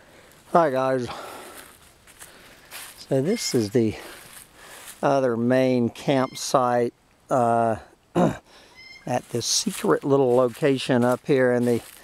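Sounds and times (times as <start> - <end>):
footsteps on leaves: 0.3 - 5.2, 8.8 - 12.0.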